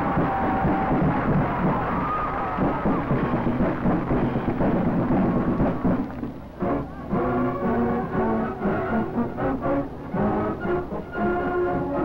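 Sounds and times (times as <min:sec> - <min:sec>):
marching band drums: 0:00.0 - 0:12.0
held horn chords: 0:03.2 - 0:12.0.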